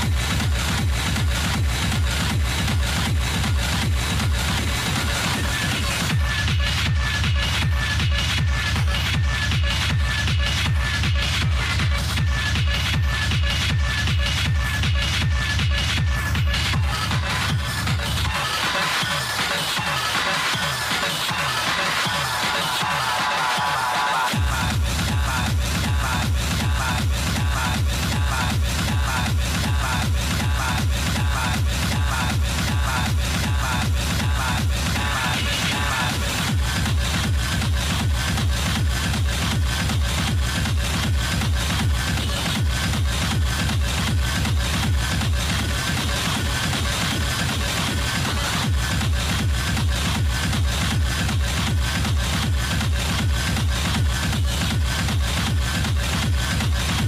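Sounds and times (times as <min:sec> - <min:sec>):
pounding kick drum: 0:00.0 - 0:19.9, 0:24.3 - 0:57.0.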